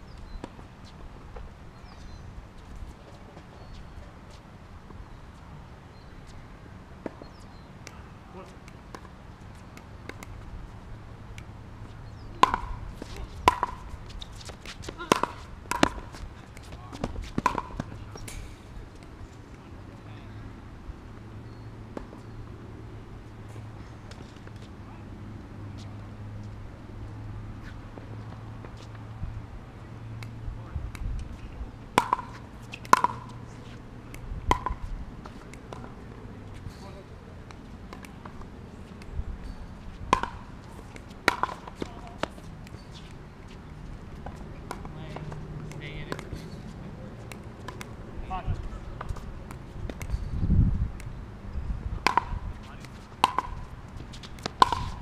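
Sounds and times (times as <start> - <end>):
ball hit and bouncing on court: 12.3 - 18.4, 31.9 - 36.0, 40.1 - 43.0, 44.2 - 46.5, 47.2 - 47.9, 52.0 - 55.0.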